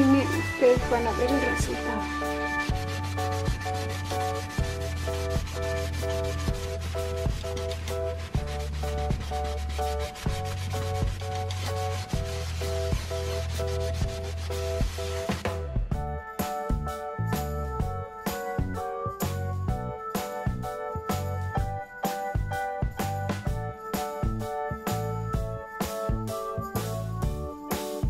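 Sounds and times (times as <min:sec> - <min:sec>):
sponge scrubbing a sink: 0:00.0 - 0:15.6
background music with bass line: 0:00.0 - 0:28.0.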